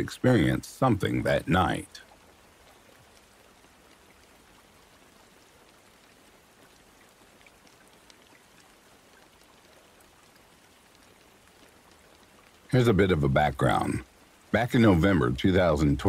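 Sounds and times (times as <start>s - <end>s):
faint rain hiss: 0.0s - 16.0s
rain drop ticks: 0.0s - 16.0s.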